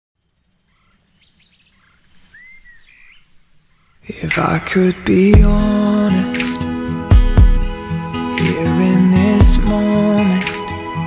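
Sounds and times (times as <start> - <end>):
birds chirping and whistling: 0.3 - 4.0.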